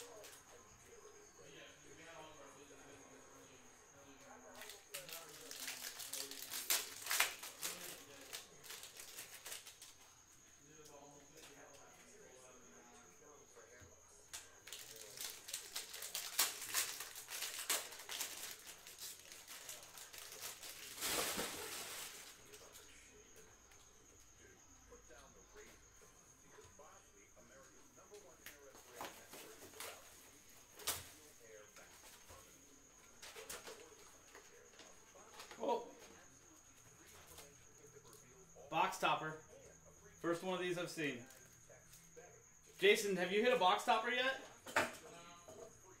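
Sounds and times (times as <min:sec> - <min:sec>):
card pack crinkling: 0:04.6 - 0:09.9, 0:14.6 - 0:22.4
cards rustling and flicking: 0:04.6 - 0:10.0, 0:14.7 - 0:22.4.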